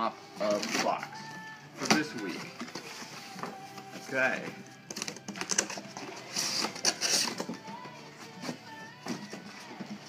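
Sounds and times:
background music: 0.0 - 10.0
box cutter slitting tape: 4.9 - 7.6.

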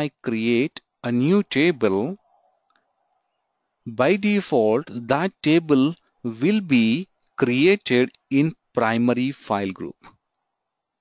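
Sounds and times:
man speaking: 0.0 - 2.2, 3.9 - 10.1
faint clicks: 2.6 - 3.4.

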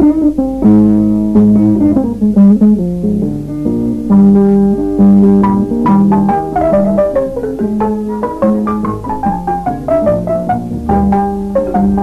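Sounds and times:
plucked string ensemble melody: 0.0 - 12.0
strong bass line: 0.0 - 12.0.

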